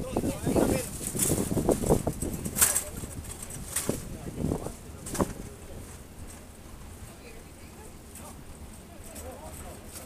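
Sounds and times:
city street rumble: 0:00.0 - 0:10.0
faint distant voices talking: 0:00.0 - 0:10.0.

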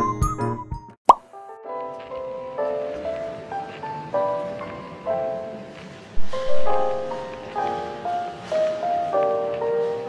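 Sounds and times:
soft tune: 0:01.3 - 0:10.0.

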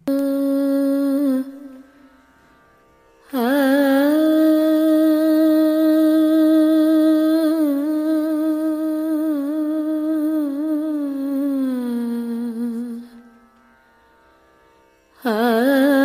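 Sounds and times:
person singing long note: 0:00.0 - 0:01.8.

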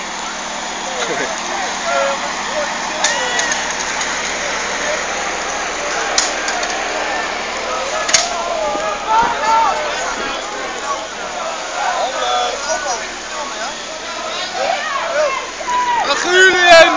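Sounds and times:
people calling and chatting: 0:00.0 - 0:16.9.

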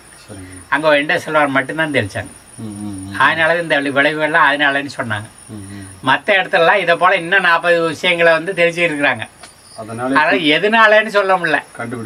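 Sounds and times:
faint high-pitched whine: 0:00.0 - 0:12.0
elderly man speaking: 0:00.2 - 0:12.0.

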